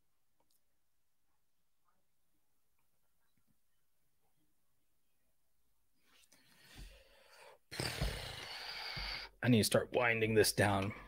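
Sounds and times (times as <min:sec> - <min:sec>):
man exhaling breathily: 0:07.0 - 0:09.3.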